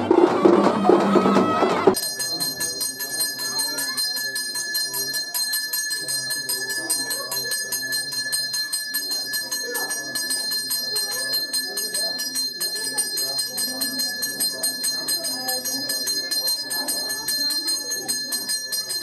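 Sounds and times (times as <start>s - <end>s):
faint voices: 0.0s - 19.0s
temple bell ringing rapidly: 0.0s - 19.0s.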